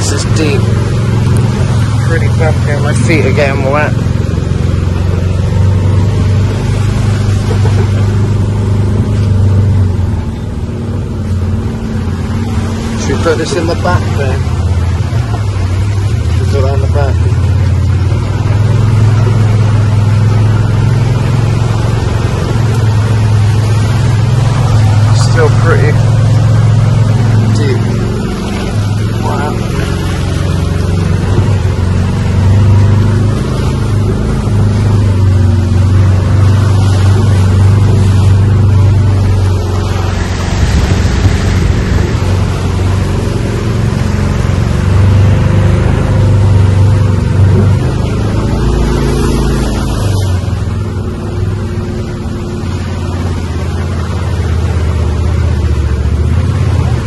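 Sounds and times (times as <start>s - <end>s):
cart motor droning: 0.0s - 57.0s
water sloshing around wheels: 0.0s - 57.0s.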